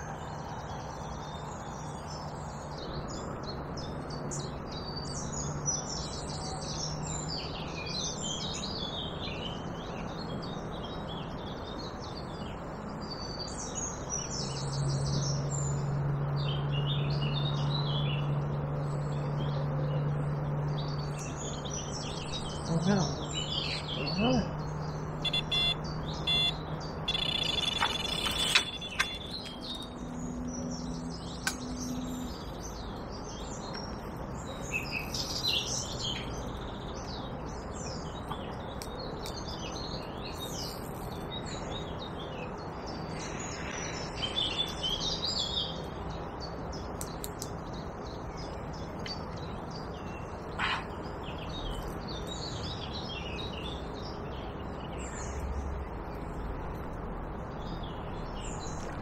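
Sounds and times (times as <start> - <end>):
small birds chirping: 0.0 - 59.0.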